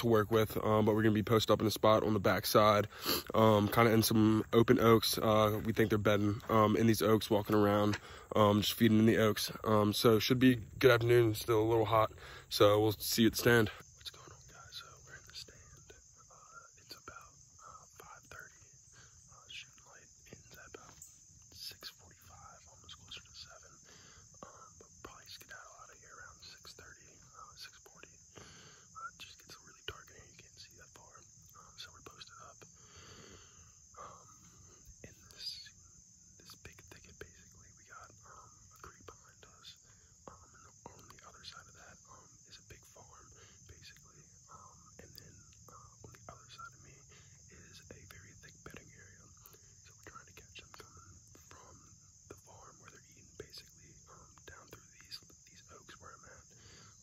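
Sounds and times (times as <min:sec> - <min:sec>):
man whispering: 0:00.0 - 0:57.0.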